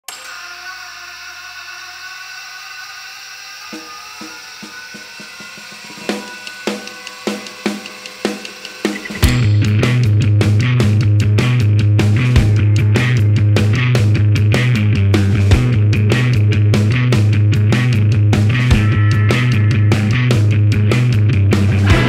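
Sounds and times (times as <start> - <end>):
droning tone: 1.1 - 22.0
drum hits: 3.8 - 16.0, 21.8 - 22.0
rock band with heavy bass: 6.1 - 22.0.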